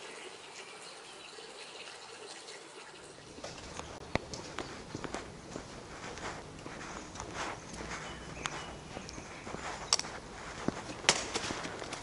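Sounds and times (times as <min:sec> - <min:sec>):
footsteps on stone paving: 0:03.3 - 0:12.0.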